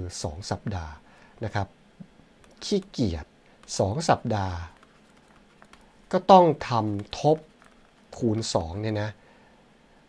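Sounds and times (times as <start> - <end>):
man speaking: 0.0 - 1.7, 2.6 - 4.8, 6.1 - 9.2
stylus tapping on tablet screen: 2.4 - 3.8, 4.7 - 5.9, 6.8 - 8.2.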